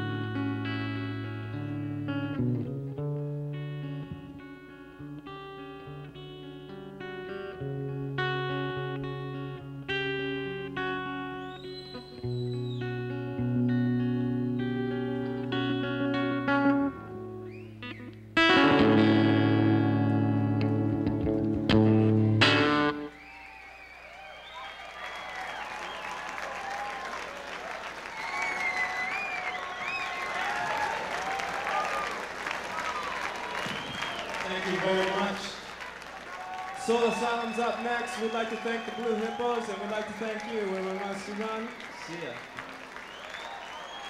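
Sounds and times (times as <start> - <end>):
electric guitar chords: 0.0 - 23.1
whistles: 11.2 - 13.3, 17.5 - 18.2, 23.1 - 27.3, 28.0 - 31.0, 32.9 - 34.9, 36.6 - 44.0
crowd applauding and cheering: 11.3 - 13.4, 23.1 - 44.0.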